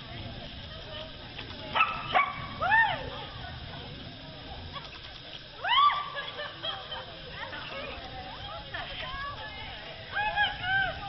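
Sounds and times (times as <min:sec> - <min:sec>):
steady low background noise: 0:00.0 - 0:11.0
dog barking: 0:01.8 - 0:02.5.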